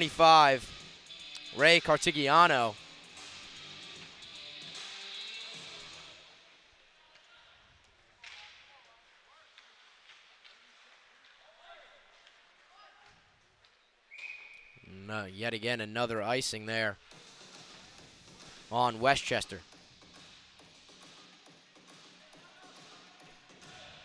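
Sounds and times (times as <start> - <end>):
ice rink background noise: 4.8 - 20.2, 20.9 - 24.0.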